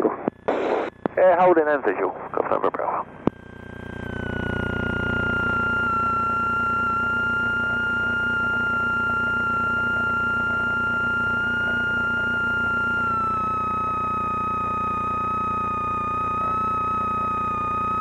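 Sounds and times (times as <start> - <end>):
aircraft engine whine and throb: 0.3 - 18.0.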